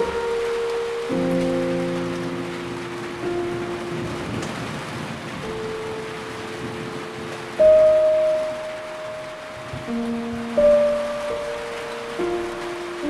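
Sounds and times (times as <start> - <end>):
slow instrumental music: 0.0 - 13.0
steady rain falling: 0.0 - 13.0.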